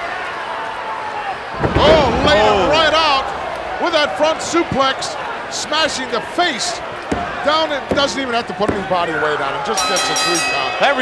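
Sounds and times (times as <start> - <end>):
excited voices: 1.1 - 6.8.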